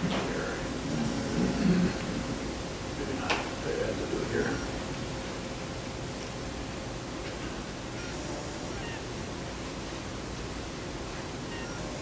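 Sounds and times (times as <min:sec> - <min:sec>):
room tone hiss: 0:00.0 - 0:12.0.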